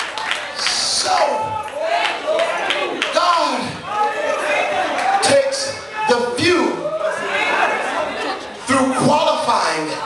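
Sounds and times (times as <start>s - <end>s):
several voices chattering: 3.8s - 10.0s.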